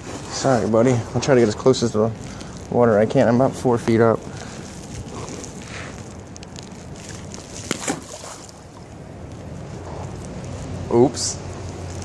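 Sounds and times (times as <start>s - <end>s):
handling rustle: 0.0s - 10.7s.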